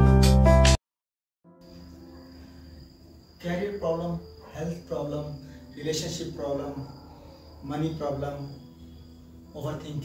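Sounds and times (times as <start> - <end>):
crickets chirping: 1.5 - 10.0
man talking: 3.4 - 7.0, 7.6 - 8.6, 9.6 - 10.0.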